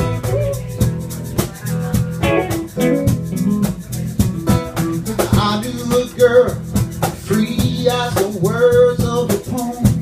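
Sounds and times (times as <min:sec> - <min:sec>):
electric guitar: 0:00.0 - 0:08.1
acoustic guitar strumming: 0:00.0 - 0:09.8
bass guitar: 0:00.0 - 0:10.0
hand percussion beat: 0:00.0 - 0:10.0.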